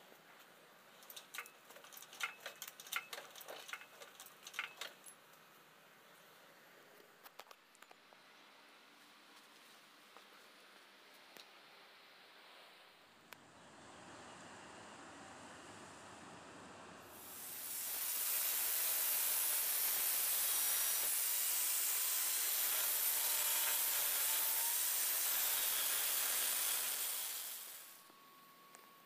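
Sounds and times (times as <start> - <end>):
angle grinder grinding steel: 17.8 - 28.1.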